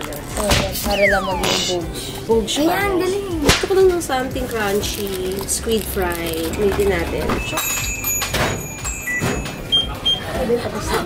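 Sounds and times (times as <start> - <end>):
microwave beeps: 0.9 - 1.8, 8.8 - 10.3.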